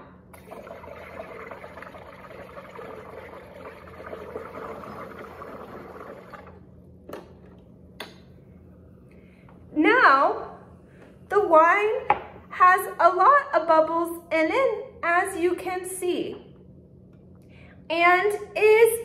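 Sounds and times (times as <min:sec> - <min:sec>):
gas bubbling through liquid: 0:00.4 - 0:06.6.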